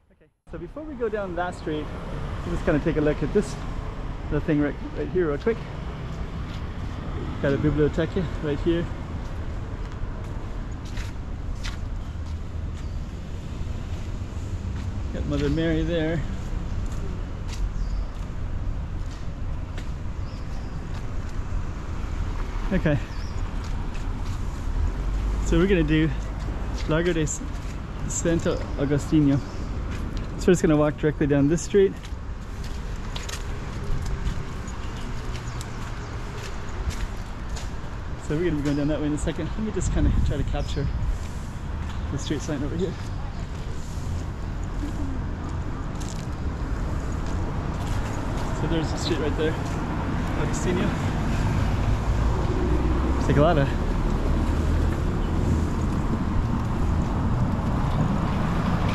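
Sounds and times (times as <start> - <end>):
distant traffic rumble: 0.0 - 58.9
footsteps on stone paving: 5.4 - 7.2, 8.2 - 13.2, 13.8 - 30.4, 31.5 - 39.6, 41.1 - 52.6.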